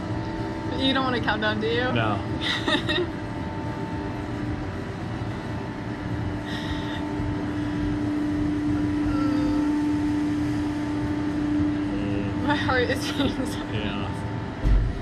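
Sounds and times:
low droning tone: 0.0 - 15.0
ride machinery hum: 0.0 - 15.0.

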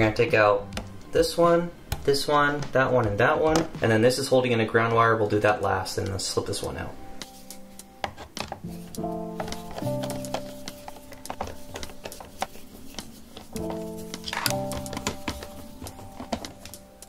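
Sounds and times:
music of sustained chords: 6.0 - 17.0.

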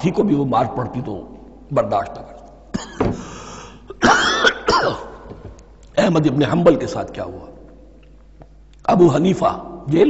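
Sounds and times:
man coughing: 2.7 - 5.2.

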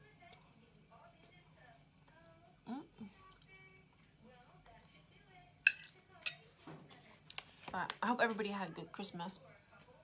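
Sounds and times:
metal fork clinking on plate: 5.7 - 6.4.

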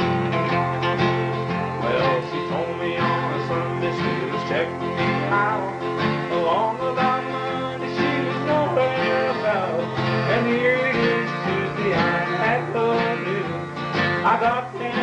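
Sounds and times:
acoustic guitars playing country: 0.0 - 15.0.

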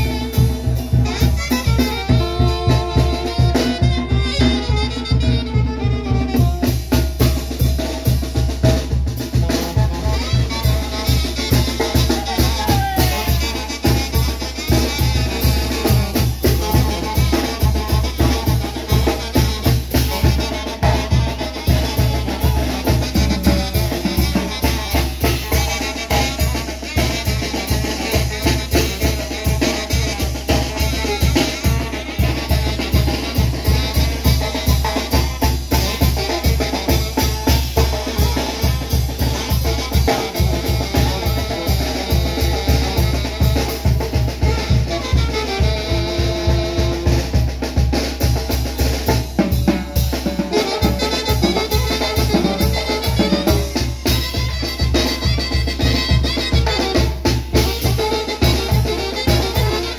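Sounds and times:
bass drum and snare beat: 0.0 - 59.9
brass band playing: 0.0 - 59.9
wind instruments: 0.0 - 59.9.

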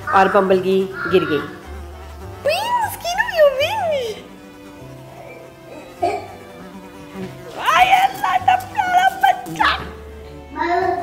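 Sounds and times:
bee buzzing sound effect: 0.0 - 11.0.

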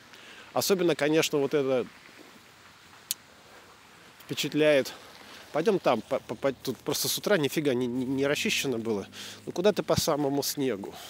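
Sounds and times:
faint steady street hiss: 0.0 - 11.0.

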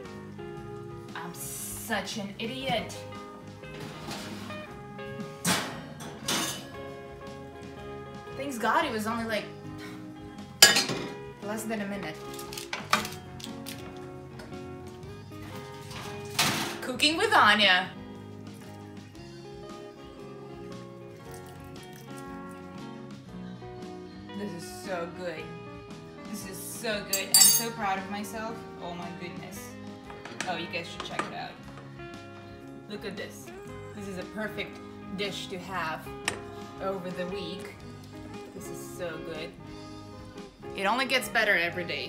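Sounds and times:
background music: 0.0 - 42.0
metal pan clattering: 5.5 - 6.7, 10.6 - 11.2, 27.2 - 27.8.

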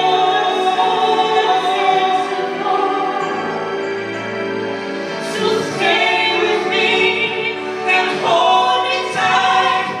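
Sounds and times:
man and woman singing duet: 0.0 - 3.8, 5.2 - 10.0
instrumental accompaniment: 0.0 - 10.0.

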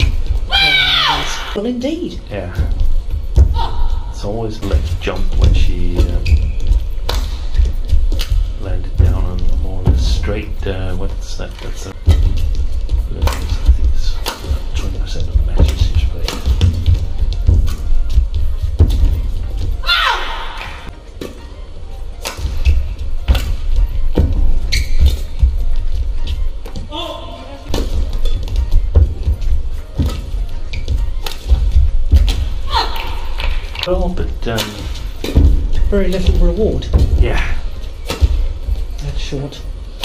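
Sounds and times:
music with heavy low pulse: 2.2 - 20.9, 21.8 - 40.0
shoe squeaks on court: 5.9 - 7.6, 24.6 - 25.4
rackets striking shuttlecock: 13.2 - 14.6, 15.6 - 16.9, 22.2 - 25.3, 30.0 - 33.9, 38.0 - 38.8.

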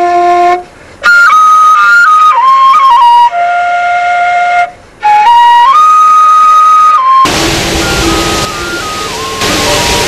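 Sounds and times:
solo flute melody: 0.0 - 10.0.

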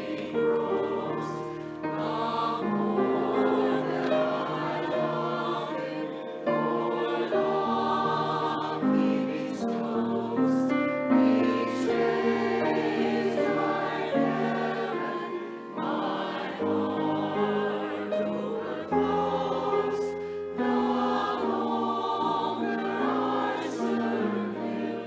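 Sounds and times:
choir singing in harmony: 0.0 - 25.0.

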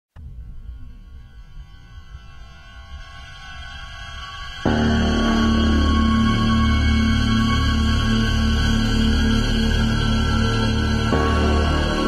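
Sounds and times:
low rumbling drone: 0.2 - 12.0.

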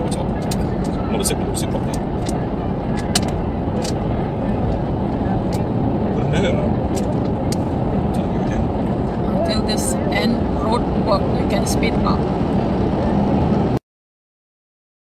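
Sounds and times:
car road and engine noise: 0.0 - 13.8.

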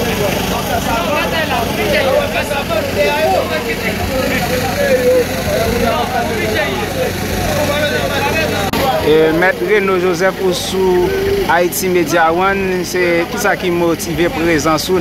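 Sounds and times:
engine hum: 0.0 - 15.0
people talking: 0.0 - 15.0.

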